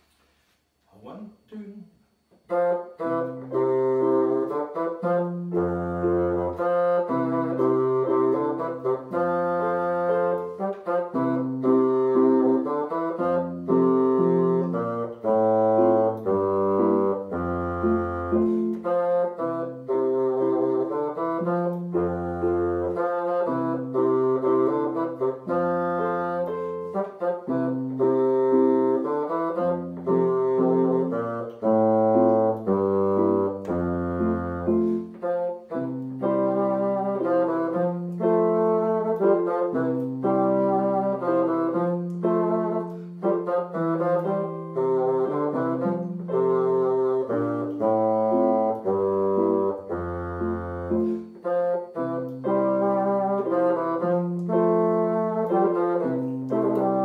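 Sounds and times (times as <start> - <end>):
bassoon melody: 2.3 - 57.0
electronic keyboard piano: 2.4 - 57.0.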